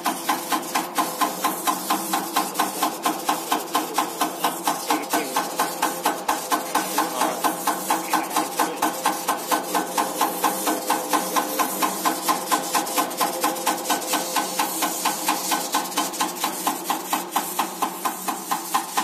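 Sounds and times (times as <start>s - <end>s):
injector clacking: 0.0s - 19.0s
test bench hum: 0.0s - 19.0s.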